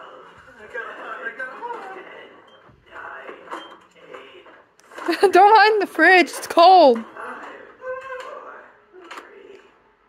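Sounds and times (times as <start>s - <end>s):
faint voices from laptop speakers: 0.0s - 10.0s.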